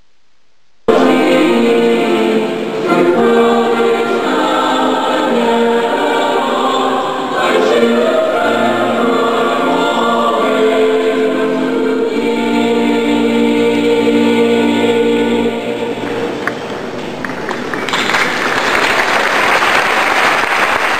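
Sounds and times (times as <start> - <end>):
choir singing held chords: 0.9 - 16.9.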